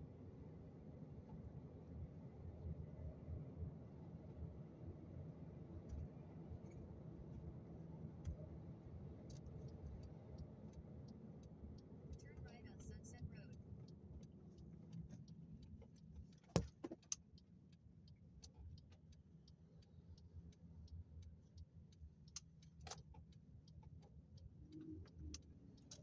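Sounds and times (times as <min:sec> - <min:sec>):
car road noise rumble: 0:00.0 - 0:26.0
fast faint ticks: 0:09.2 - 0:26.0.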